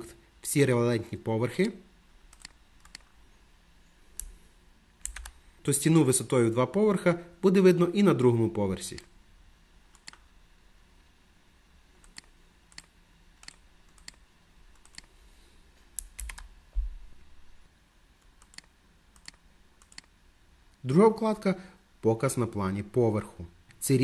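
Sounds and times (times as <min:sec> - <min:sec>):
mouse and keyboard clicks: 0:02.3 - 0:03.1, 0:18.3 - 0:20.1.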